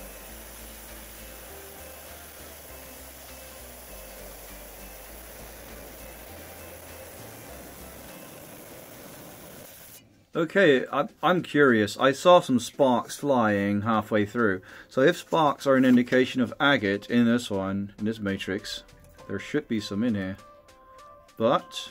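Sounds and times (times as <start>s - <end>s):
stone saw grinding hiss: 0.0s - 10.0s
quiet background music: 0.0s - 21.9s.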